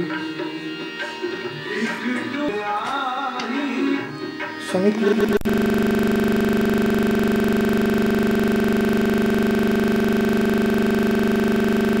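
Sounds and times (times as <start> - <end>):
steady electronic drone: 5.2 - 12.0.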